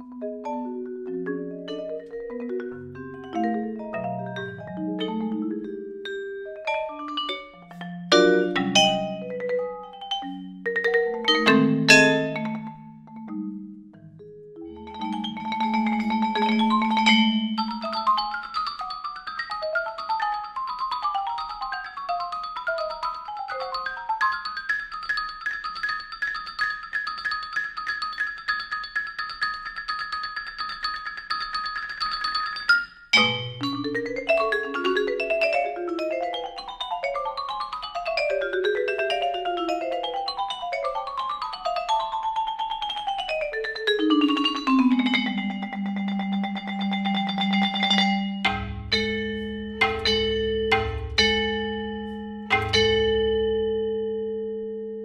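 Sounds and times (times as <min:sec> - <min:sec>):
marimbas and vibraphones playing: 0:00.0 - 0:55.0.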